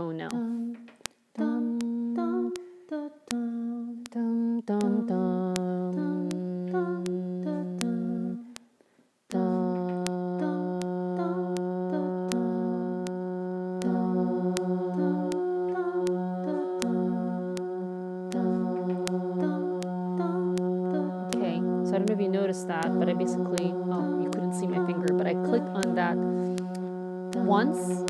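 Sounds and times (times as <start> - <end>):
woman humming a low drone: 4.6 - 8.4, 9.3 - 28.0
looped hummed arpeggio: 9.4 - 28.0
metronome clicks: 11.6 - 13.2, 21.3 - 28.0.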